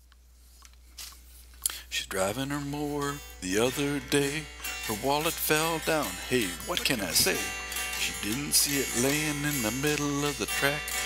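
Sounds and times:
person singing: 2.0s - 11.0s.

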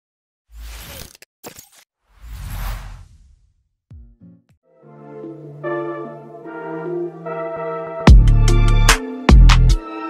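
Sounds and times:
whoosh sound effect: 2.2s - 3.6s.

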